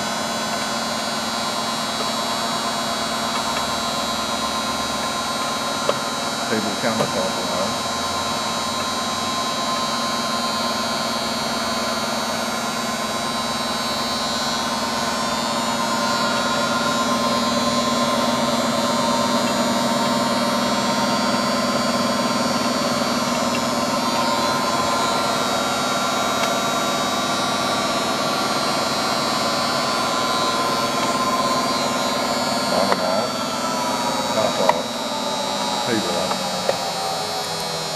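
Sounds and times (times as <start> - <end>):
grinder motor hum and whine: 0.0 - 37.9.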